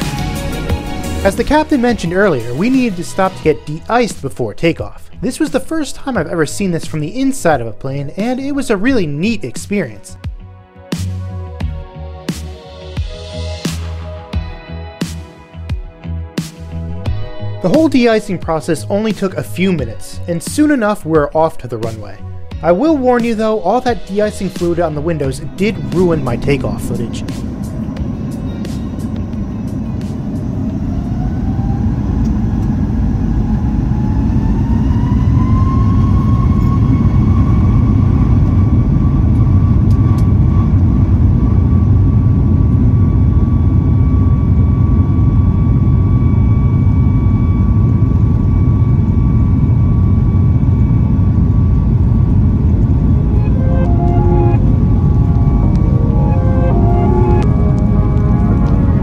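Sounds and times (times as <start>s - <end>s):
jet engine whine: 0.0s - 9.4s, 21.8s - 59.0s
heavy rumble of rolling jet: 0.0s - 10.0s, 16.6s - 59.0s
music: 0.0s - 32.6s, 33.9s - 59.0s.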